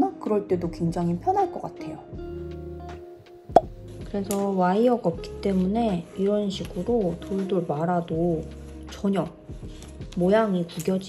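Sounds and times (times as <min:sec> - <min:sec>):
soft background music: 0:00.0 - 0:11.0
sharp pop sound effect: 0:03.5 - 0:03.7.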